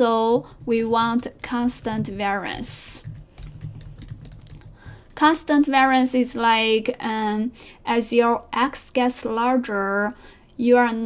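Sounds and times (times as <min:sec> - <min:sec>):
computer keyboard typing: 0:00.4 - 0:05.4.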